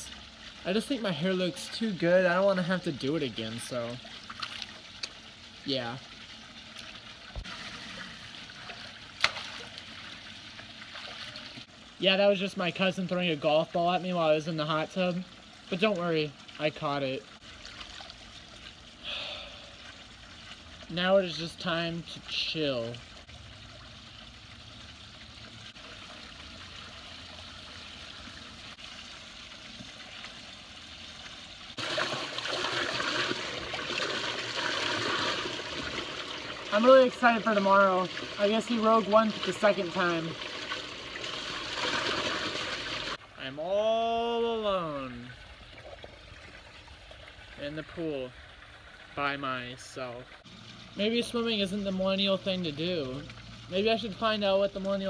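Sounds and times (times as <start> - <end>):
running water spilling over: 0.0 - 55.0
water splashing: 0.0 - 55.0.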